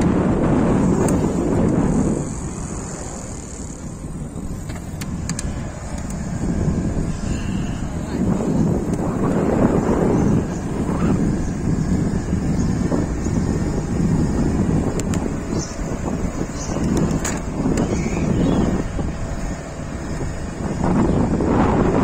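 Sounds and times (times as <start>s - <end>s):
bicycle road noise: 0.0s - 22.0s
traffic: 0.0s - 22.0s
wind rumbling on microphone: 0.0s - 22.0s.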